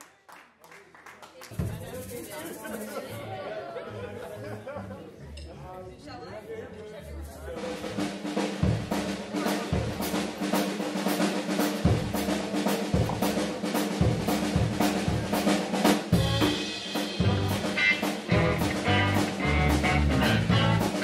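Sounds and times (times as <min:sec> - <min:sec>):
snare drum hits: 0:11.2 - 0:13.6
bass notes: 0:16.2 - 0:21.0.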